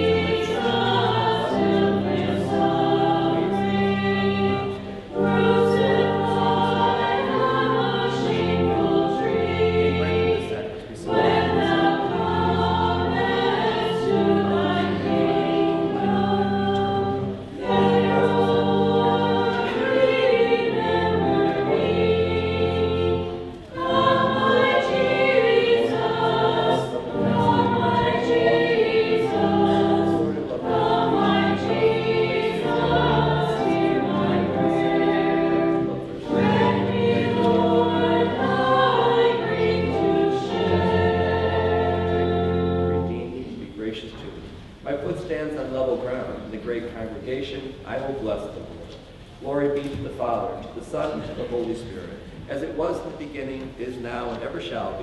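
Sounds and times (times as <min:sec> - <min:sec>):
sustained low accompanying notes: 0:00.0 - 0:48.7
voices singing a hymn: 0:00.0 - 0:55.0.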